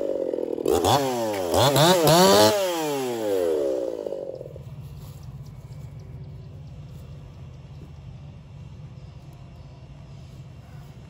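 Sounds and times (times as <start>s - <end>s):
chainsaw winding down to idle: 0.0s - 4.8s.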